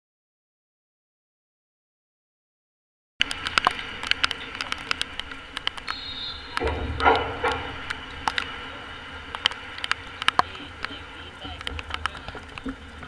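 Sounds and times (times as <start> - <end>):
sharp clicks and taps: 3.2 - 8.6, 9.3 - 12.8
steady background hiss: 3.2 - 13.0.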